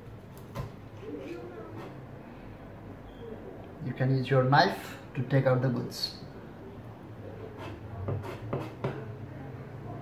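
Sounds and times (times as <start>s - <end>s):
knife scraping on plastic cutting board: 7.5s - 9.0s.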